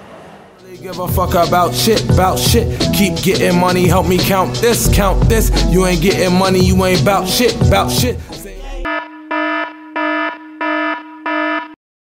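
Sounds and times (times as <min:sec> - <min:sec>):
harsh electronic buzzer: 0:08.9 - 0:11.8.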